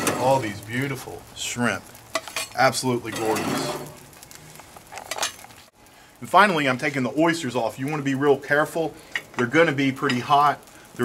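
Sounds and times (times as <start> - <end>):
faint sizzle of seafood: 0.0 - 11.0.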